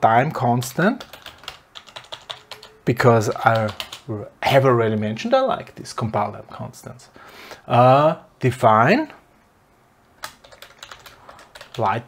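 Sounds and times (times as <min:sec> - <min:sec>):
computer keyboard typing: 0:00.8 - 0:04.1, 0:10.2 - 0:12.0.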